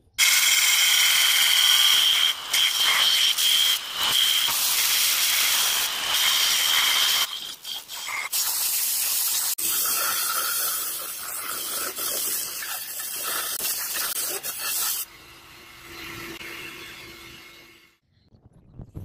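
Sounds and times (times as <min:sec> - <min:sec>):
belt grinder grinding steel: 0:00.2 - 0:15.1.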